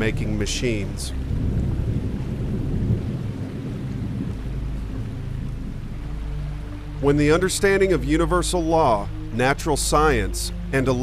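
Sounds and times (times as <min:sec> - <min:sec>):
deep thunder-like rumble: 0:00.0 - 0:06.6
quiet background music: 0:00.0 - 0:11.0.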